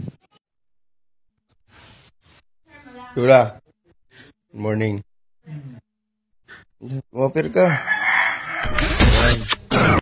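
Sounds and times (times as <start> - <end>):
rooster crowing: 7.6 - 8.9.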